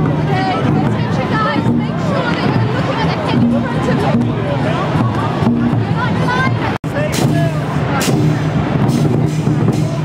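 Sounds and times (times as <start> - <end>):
drum beats: 0.0 - 10.0
cymbal crashes: 7.0 - 10.0.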